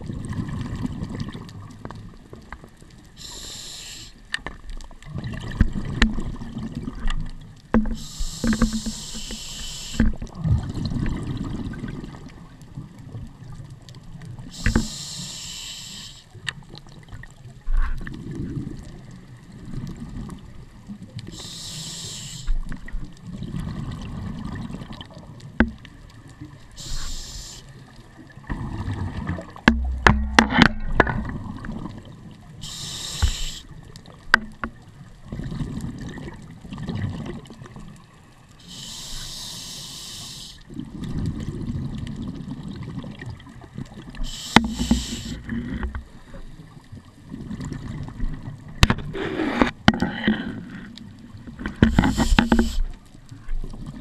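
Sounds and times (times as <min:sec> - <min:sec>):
low rumble of inhaling: 0:03.2 - 0:04.3, 0:07.9 - 0:10.2, 0:14.5 - 0:16.4, 0:21.3 - 0:22.7, 0:26.8 - 0:27.8, 0:32.6 - 0:33.8, 0:38.6 - 0:40.7, 0:44.2 - 0:46.8, 0:51.8 - 0:53.0
sharp clicks and knocks: 0:07.1 - 0:09.3, 0:29.6 - 0:31.3, 0:34.3 - 0:34.8, 0:51.6 - 0:52.8.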